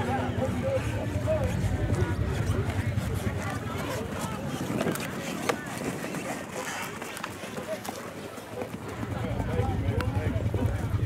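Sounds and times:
horse hooves striking ground: 0.0 - 11.0
people talking: 0.0 - 11.0.

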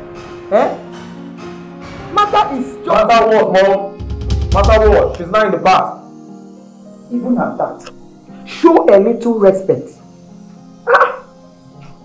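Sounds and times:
background music: 0.0 - 12.0
dog bark: 10.9 - 11.3.

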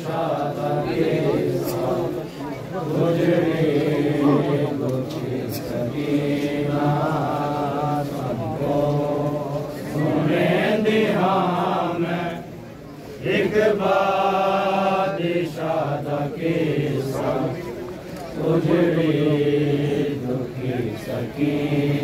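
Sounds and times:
men chanting a lament: 0.0 - 12.4, 13.2 - 17.7, 18.4 - 22.0.

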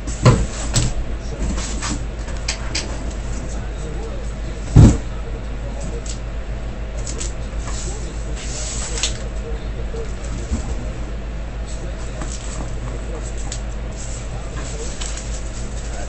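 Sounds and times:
steady low hum: 0.0 - 16.0
cardboard and packing peanuts rustling: 12.0 - 16.0.

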